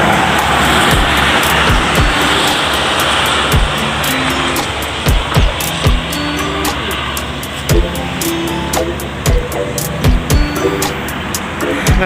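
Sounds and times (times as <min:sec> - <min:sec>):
background music with bass: 0:00.0 - 0:12.0
road traffic rush: 0:00.0 - 0:12.0
deep drum thumps: 0:00.9 - 0:02.2, 0:05.1 - 0:06.1, 0:07.7 - 0:08.0, 0:09.3 - 0:10.6.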